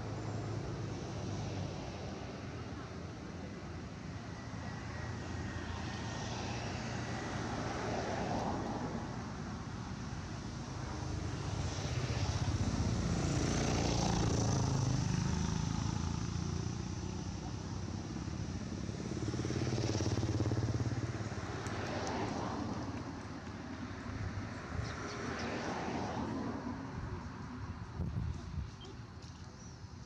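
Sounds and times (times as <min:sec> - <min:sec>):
passing vehicles engine rumble: 0:00.0 - 0:30.0.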